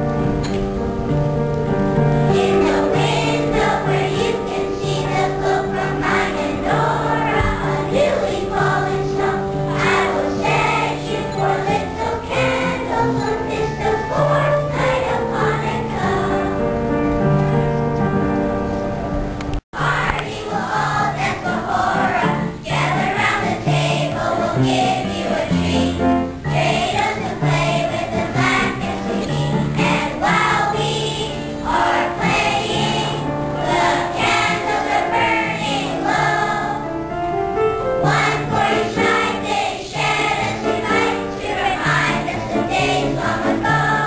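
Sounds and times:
piano accompaniment: 0:00.0 - 0:44.0
children's choir singing: 0:02.0 - 0:17.6, 0:19.8 - 0:37.2, 0:37.8 - 0:44.0.

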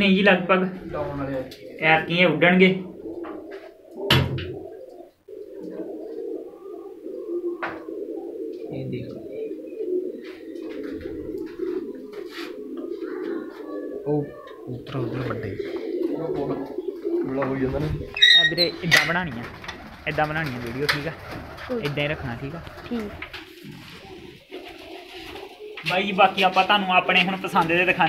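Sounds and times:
pigeons cooing: 0:00.0 - 0:28.0.

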